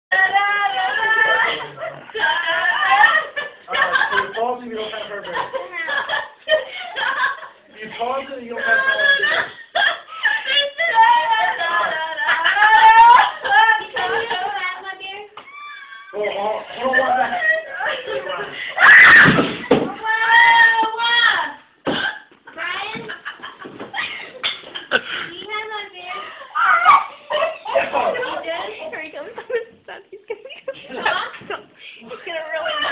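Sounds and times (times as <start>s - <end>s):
woman's high-pitched cry: 10.2s - 14.0s.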